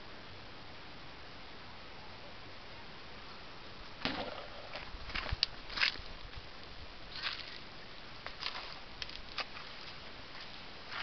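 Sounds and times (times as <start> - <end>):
footsteps on dry leaves: 7.1 - 7.7, 8.3 - 11.0.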